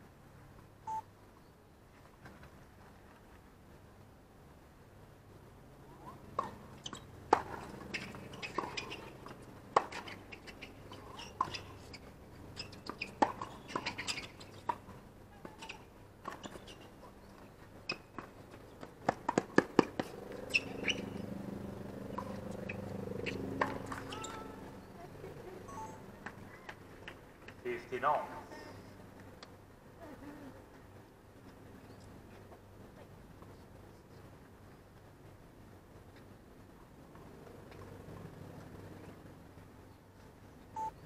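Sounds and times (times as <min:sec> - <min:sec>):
shoe squeaks: 0:06.4 - 0:18.8, 0:20.0 - 0:21.3, 0:22.1 - 0:25.0, 0:25.7 - 0:26.8
racket striking tennis ball: 0:07.3 - 0:12.0, 0:19.0 - 0:21.2.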